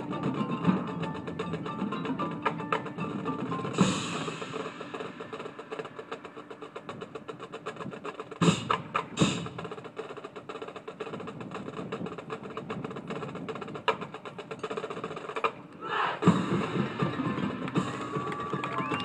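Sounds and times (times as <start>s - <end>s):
marching band playing: 0.0s - 19.0s.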